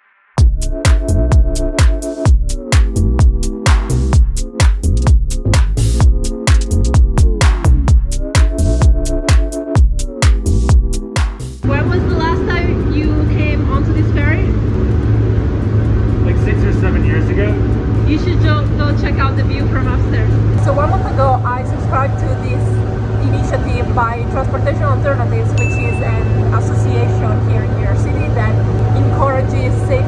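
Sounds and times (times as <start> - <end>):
ship engine drone: 11.6 - 30.0.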